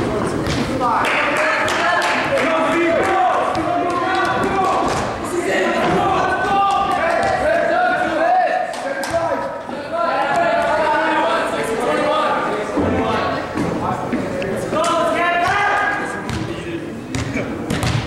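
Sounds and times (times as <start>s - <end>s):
voices chattering and calling out: 0.0s - 18.0s.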